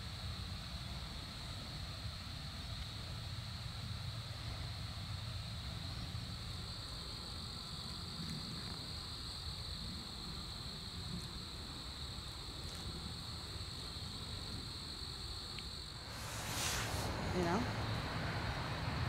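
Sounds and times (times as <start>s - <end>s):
insects trilling: 0.0s - 19.0s
low rumble: 16.0s - 19.0s.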